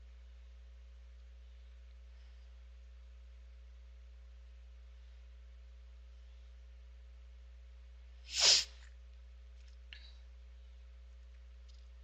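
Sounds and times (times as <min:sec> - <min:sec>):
sharp burst of breath: 0:08.3 - 0:08.8.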